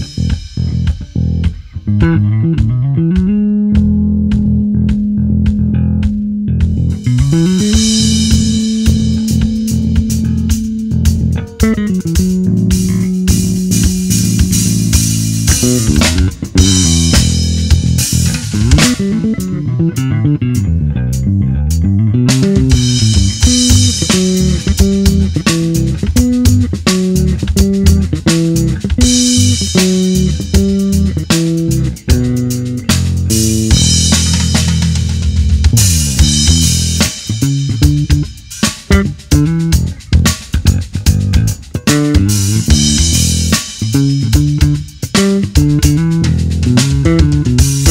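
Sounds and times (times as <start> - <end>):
drum kit backing track: 0.0 - 47.9
electric bass played fingerstyle: 0.0 - 47.9.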